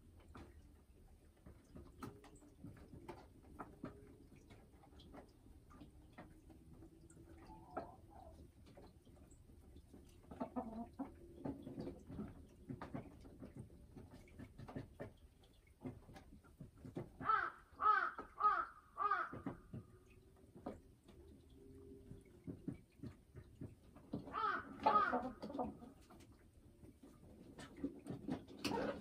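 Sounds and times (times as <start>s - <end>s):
hen clucking: 10.0s - 12.0s, 24.2s - 26.3s.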